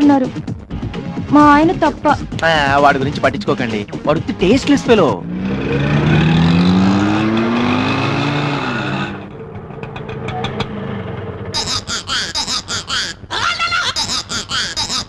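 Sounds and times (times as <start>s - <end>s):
street traffic: 0.0s - 15.0s
vehicle engine accelerating: 2.8s - 11.9s.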